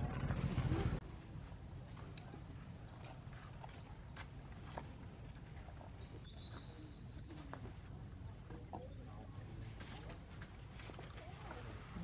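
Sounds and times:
steady low rumble: 0.0s - 1.4s.

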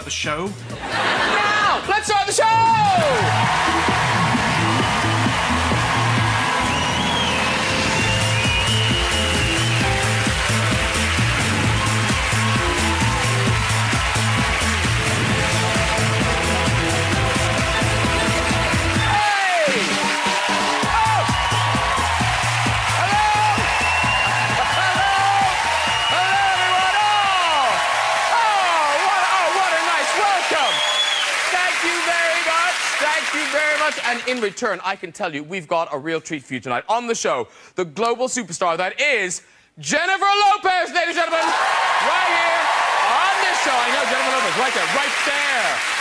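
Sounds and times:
upbeat theme music with bass: 0.0s - 35.0s
audience clapping and cheering: 1.0s - 35.1s, 41.2s - 46.0s.

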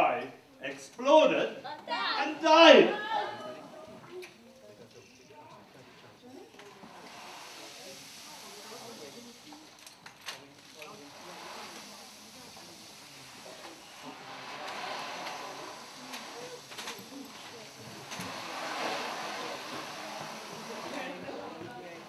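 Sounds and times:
murmur of voices: 0.0s - 22.0s
steady hiss: 4.7s - 22.0s.

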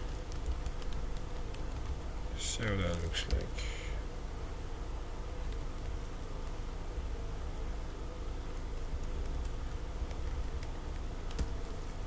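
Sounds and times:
computer keyboard clicks: 0.0s - 2.0s, 8.5s - 11.7s
steady low hum: 0.0s - 12.0s.

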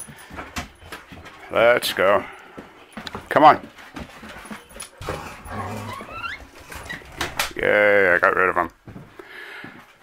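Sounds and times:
dogs moving on floor: 0.0s - 7.6s
dog whining: 5.0s - 7.0s.

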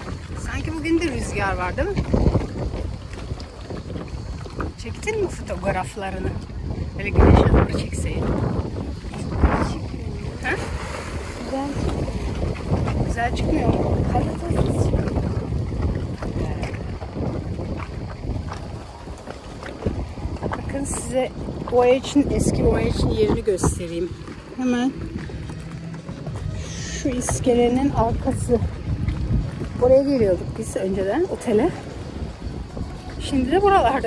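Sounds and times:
wind buffeting microphone: 0.0s - 34.0s.

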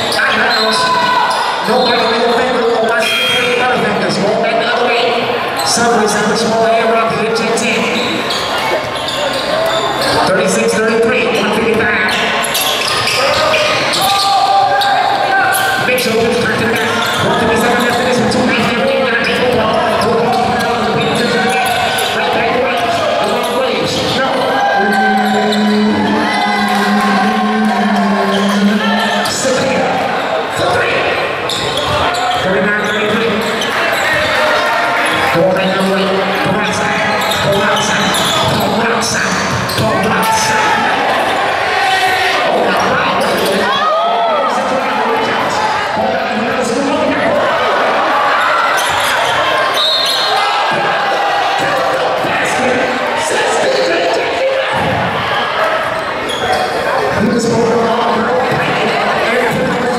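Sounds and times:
voices of players and spectators: 0.0s - 59.9s.

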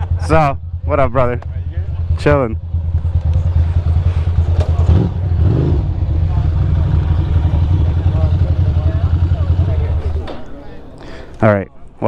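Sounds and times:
motorcycle engine idling: 0.0s - 10.8s
faint voices: 0.8s - 12.0s.

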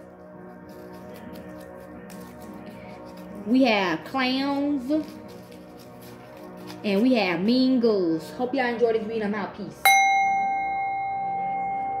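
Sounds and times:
bell ringing: 9.9s - 12.0s.

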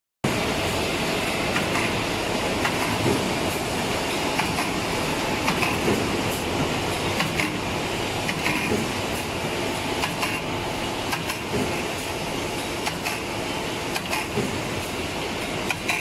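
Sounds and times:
packing machine clatter: 0.3s - 16.0s.

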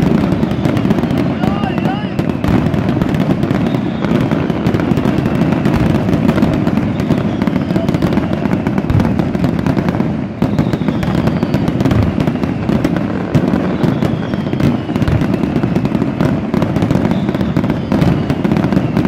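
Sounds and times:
fireworks crackling and banging: 0.0s - 19.0s
faint falling whistles: 3.5s - 4.4s, 6.8s - 8.8s, 10.4s - 12.9s, 13.5s - 15.9s, 16.9s - 19.0s.

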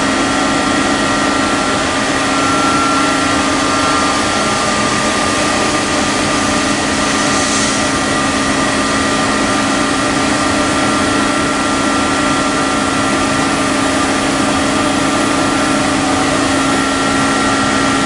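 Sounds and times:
machine hum with whining tones: 0.0s - 18.0s.

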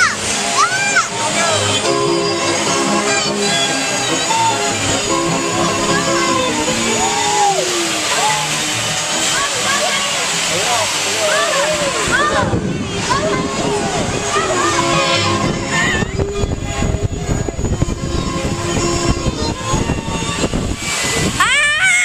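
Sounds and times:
children squealing and shouting: 0.0s - 16.6s, 19.0s - 22.0s
amusement ride music: 0.0s - 22.0s
steady rush of noise: 0.0s - 22.0s.

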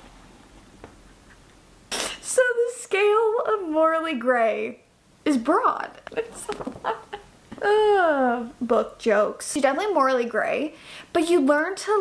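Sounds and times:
person speaking: 5.3s - 12.0s.

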